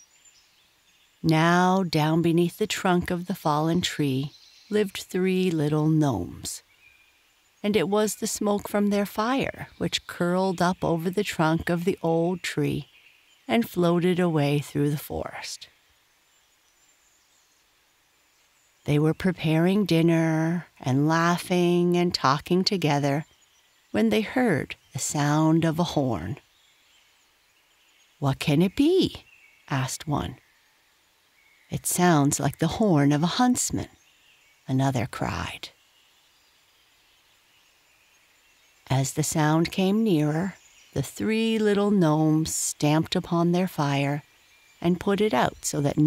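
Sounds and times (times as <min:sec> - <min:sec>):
faint hiss: 0:00.0 - 0:02.4, 0:04.2 - 0:04.8, 0:05.8 - 0:07.6, 0:12.8 - 0:13.5, 0:15.3 - 0:19.1, 0:23.2 - 0:24.0, 0:26.4 - 0:41.0, 0:44.2 - 0:44.9
narrator speaking: 0:01.2 - 0:06.6, 0:07.6 - 0:12.8, 0:13.5 - 0:15.6, 0:18.9 - 0:23.2, 0:24.0 - 0:26.4, 0:28.2 - 0:30.4, 0:31.7 - 0:33.9, 0:34.7 - 0:35.7, 0:38.9 - 0:44.2, 0:44.8 - 0:46.0
person telling a story: 0:01.2 - 0:06.6, 0:07.6 - 0:12.9, 0:13.5 - 0:15.7, 0:18.9 - 0:23.2, 0:24.0 - 0:26.4, 0:28.2 - 0:30.4, 0:31.7 - 0:33.9, 0:34.7 - 0:35.7, 0:38.9 - 0:44.2, 0:44.8 - 0:46.0.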